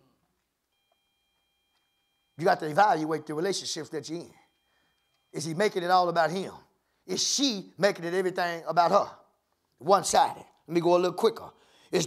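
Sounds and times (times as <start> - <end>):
faint steady high tone: 0.0 - 7.8, 10.1 - 12.0.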